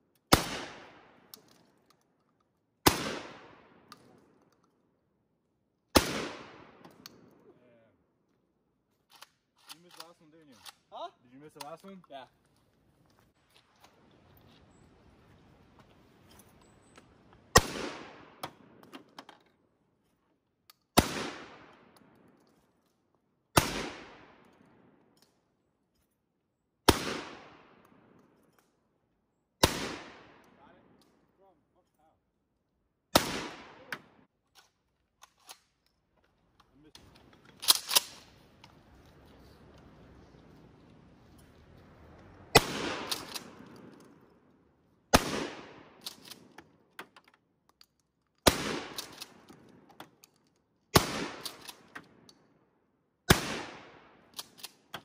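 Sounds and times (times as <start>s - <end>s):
shotgun shots: 0.3s - 1.2s, 2.8s - 3.9s, 5.9s - 6.8s, 17.5s - 18.8s, 21.0s - 22.0s, 23.6s - 24.4s, 26.9s - 27.8s, 29.6s - 30.5s, 33.1s - 34.2s, 42.5s - 43.9s, 45.1s - 46.5s, 48.4s - 49.4s, 50.9s - 52.2s, 53.3s - 54.4s.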